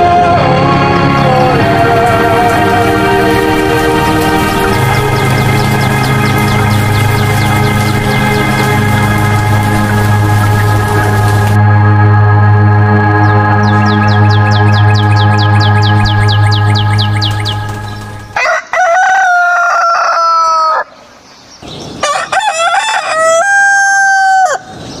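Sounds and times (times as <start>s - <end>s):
sustained organ chord: 0.0s - 18.4s
high falling chirps: 1.1s - 11.6s, 13.2s - 18.4s
rooster crowing: 18.3s - 21.0s, 22.0s - 24.8s.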